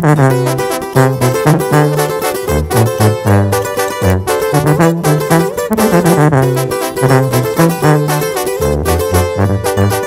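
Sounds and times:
sousaphone bass line: 0:00.0 - 0:10.0
strummed acoustic guitars: 0:00.0 - 0:10.0
trumpet: 0:00.0 - 0:10.0.

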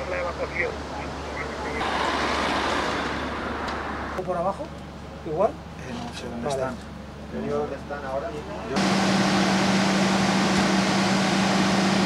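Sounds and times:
road vehicle noise: 0:00.0 - 0:12.0.

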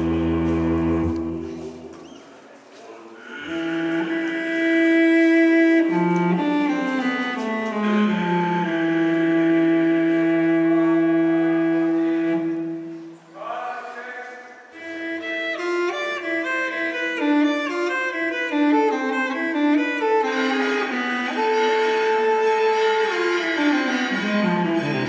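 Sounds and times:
bowed strings music: 0:00.0 - 0:02.0, 0:03.3 - 0:13.3, 0:14.8 - 0:25.0.

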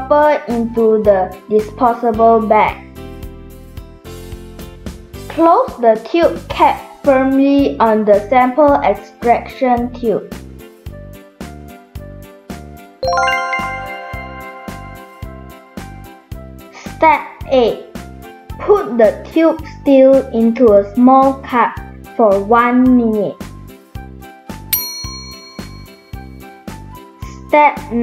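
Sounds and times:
background music with steady beat: 0:02.6 - 0:05.3, 0:10.3 - 0:18.6, 0:23.4 - 0:27.2
rising bell-like chimes: 0:13.0 - 0:16.2.

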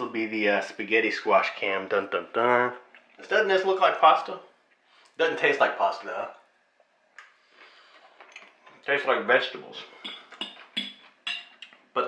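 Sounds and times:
man speaking: 0:00.0 - 0:04.5, 0:05.2 - 0:06.4, 0:08.9 - 0:10.0
faint chewing: 0:02.8 - 0:03.2, 0:06.8 - 0:08.9, 0:09.9 - 0:12.0.

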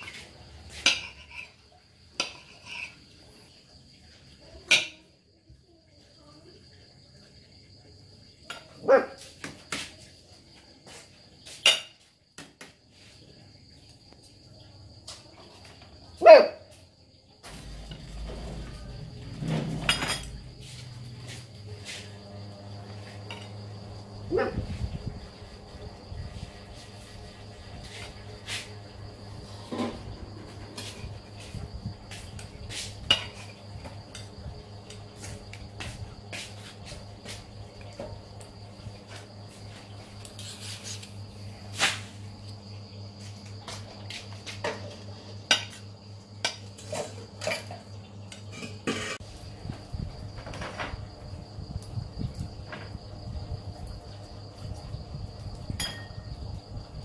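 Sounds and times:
cutlery scraping ceramic plate: 0:00.0 - 0:01.6, 0:02.2 - 0:03.1, 0:19.5 - 0:20.4, 0:29.6 - 0:30.1, 0:33.1 - 0:34.3, 0:46.4 - 0:49.2.

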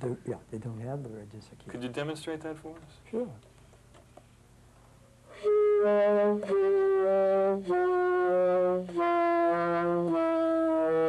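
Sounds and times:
lower saxophone tone: 0:05.3 - 0:11.0.

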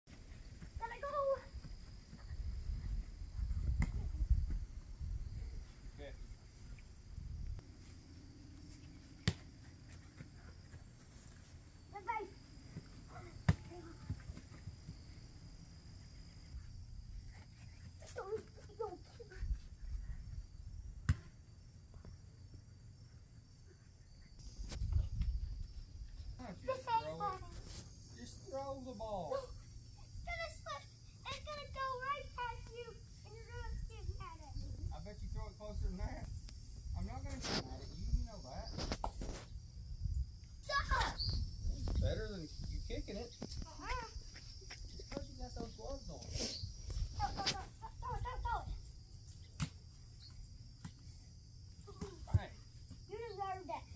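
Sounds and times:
child's voice: 0:00.8 - 0:01.6, 0:11.9 - 0:12.4, 0:13.1 - 0:14.2, 0:18.0 - 0:19.6, 0:26.7 - 0:27.6, 0:30.0 - 0:34.7, 0:40.6 - 0:41.3, 0:43.6 - 0:44.2, 0:47.2 - 0:48.8, 0:53.1 - 0:53.9
voices: 0:00.8 - 0:01.6, 0:26.4 - 0:36.2, 0:40.6 - 0:48.8
high insect chirring: 0:19.6 - 0:53.9.

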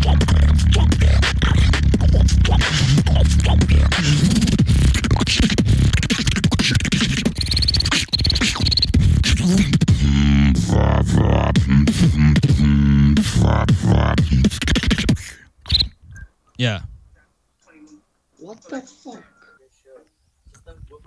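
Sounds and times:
hummed bass tone: 0:00.0 - 0:06.0, 0:07.4 - 0:14.6
beatboxing kick and snare: 0:00.0 - 0:15.9.

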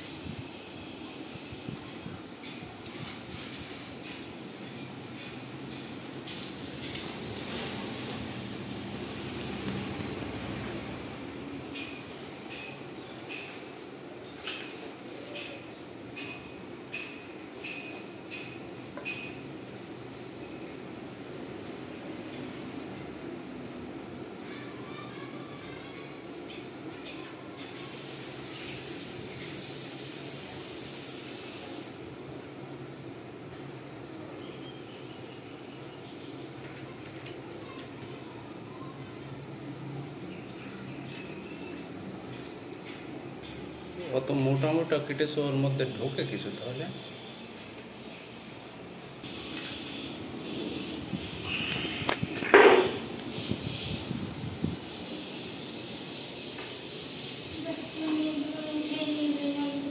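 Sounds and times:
steady hiss: 0:27.6 - 0:34.2, 0:44.0 - 0:59.9.

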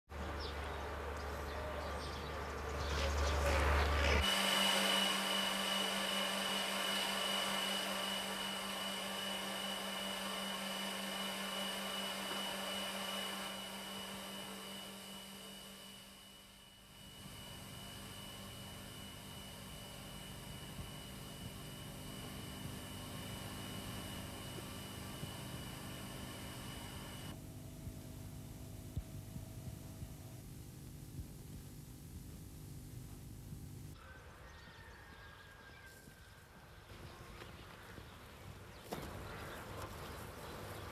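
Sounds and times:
high machinery whine: 0:00.2 - 0:34.0
machinery hum: 0:00.2 - 0:34.0.

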